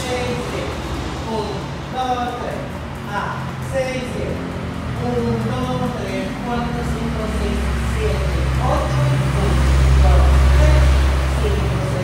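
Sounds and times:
passing vehicle engine rumble: 0.0 - 12.0.

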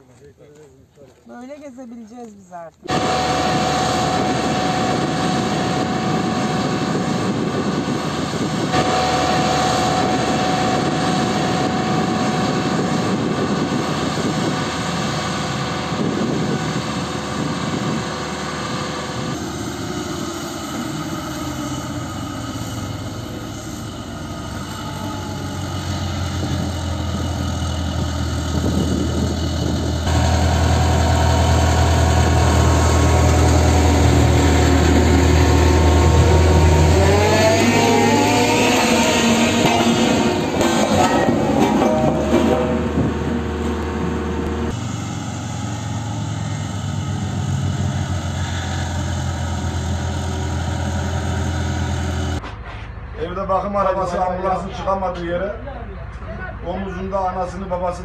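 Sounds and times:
diesel machinery engines running: 0.0 - 58.0
deep drone: 2.8 - 58.0.

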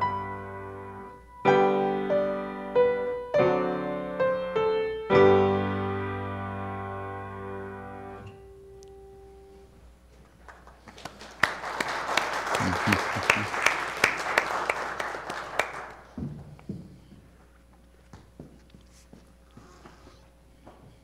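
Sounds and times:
grand piano chord: 0.0 - 9.7
audience clapping: 10.2 - 16.2.

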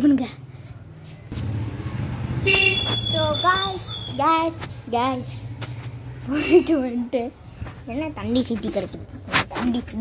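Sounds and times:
traffic rumble: 0.0 - 10.0
vehicle horn: 2.4 - 3.3.

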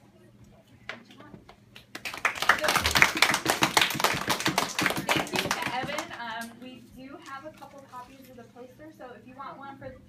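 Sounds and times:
children applauding: 1.9 - 6.0.

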